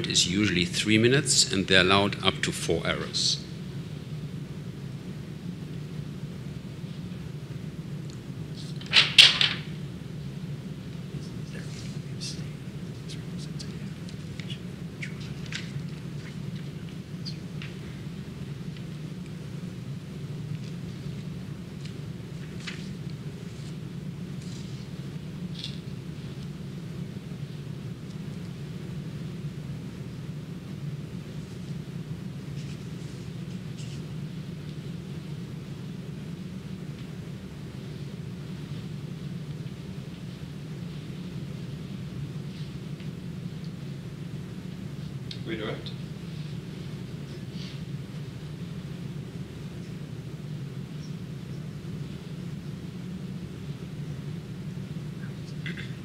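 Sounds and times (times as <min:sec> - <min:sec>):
low room hum: 0:00.0 - 0:56.0.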